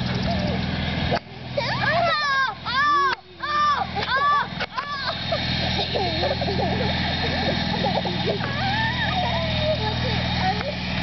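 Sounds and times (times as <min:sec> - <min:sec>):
children laughing and squealing: 0:00.0 - 0:00.7, 0:01.4 - 0:11.0
low motor-like hum: 0:00.0 - 0:11.0.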